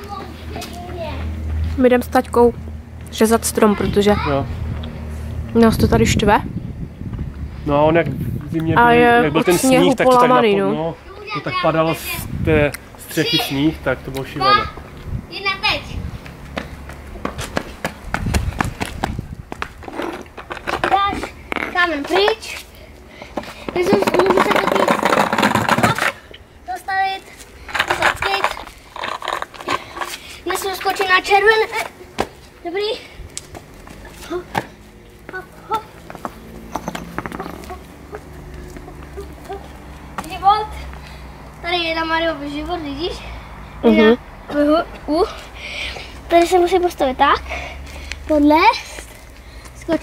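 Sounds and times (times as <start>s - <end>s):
voices talking: 7.5s - 18.0s, 20.7s - 50.0s.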